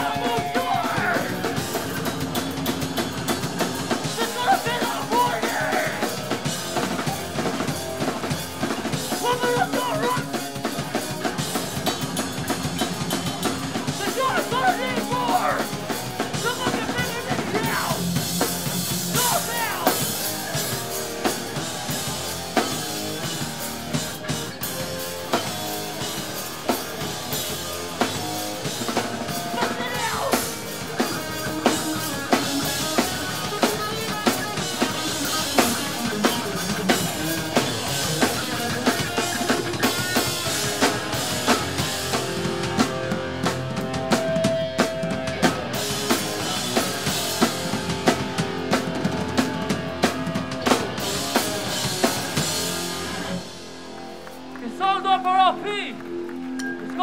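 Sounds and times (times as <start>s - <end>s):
drum kit steady beat: 0.0s - 53.9s
distorted guitars: 0.0s - 57.0s.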